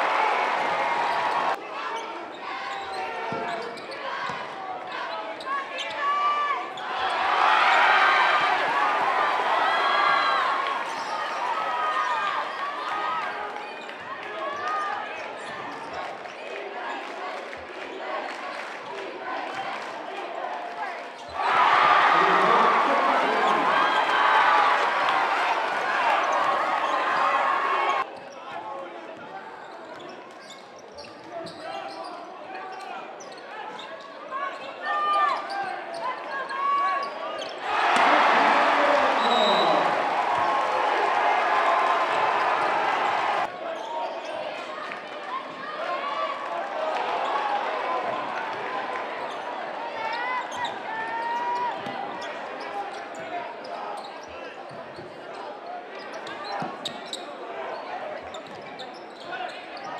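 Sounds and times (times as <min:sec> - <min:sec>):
crowd cheering: 0:00.0 - 0:28.1, 0:34.8 - 0:54.1
sneakers squeaking on floor: 0:02.7 - 0:04.4, 0:29.6 - 0:34.6, 0:50.4 - 0:50.8, 0:54.0 - 0:55.4, 0:56.0 - 0:57.3, 0:58.2 - 0:59.9.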